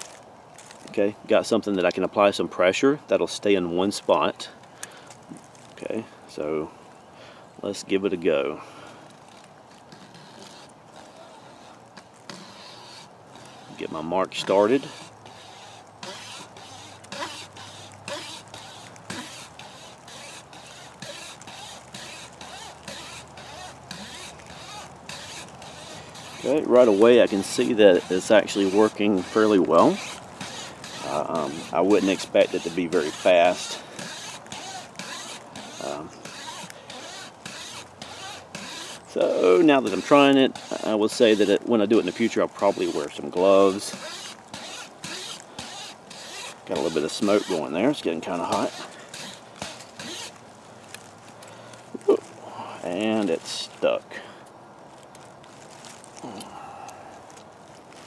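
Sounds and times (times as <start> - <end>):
wire saw rasping through wood: 9.2 - 50.4.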